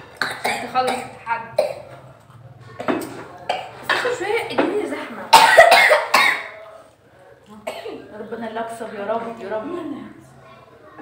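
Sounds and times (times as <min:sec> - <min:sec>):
person coughing: 0:00.2 - 0:01.8, 0:05.3 - 0:06.6.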